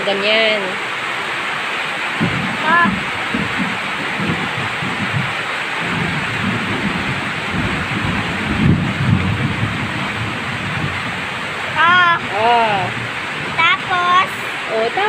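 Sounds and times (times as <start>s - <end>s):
heavy rain pouring: 0.0s - 15.0s
low rumble: 2.2s - 14.0s.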